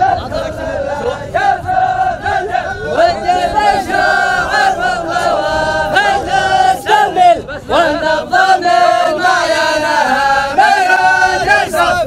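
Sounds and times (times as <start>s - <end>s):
men chanting in long held notes: 0.0s - 12.0s.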